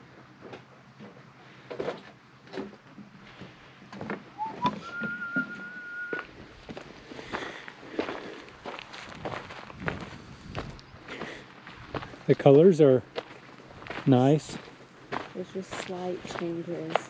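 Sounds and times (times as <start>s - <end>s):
person whistling: 4.4s - 6.3s
footsteps on leafy trail: 6.2s - 17.0s.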